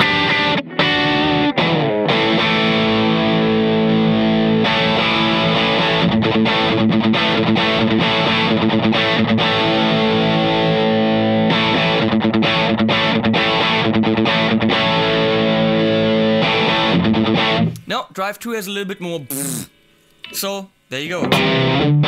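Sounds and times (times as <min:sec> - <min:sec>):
distorted electric guitar chords: 0:00.0 - 0:17.8, 0:21.2 - 0:22.0.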